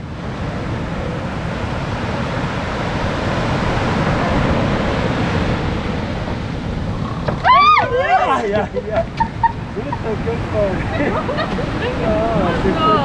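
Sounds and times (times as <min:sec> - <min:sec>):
sea surf rushing: 0:00.0 - 0:13.0
wind on microphone: 0:00.0 - 0:13.0.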